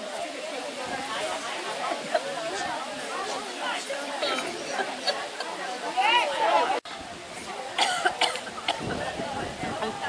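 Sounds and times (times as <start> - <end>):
quiet chatter: 0.0 - 10.0.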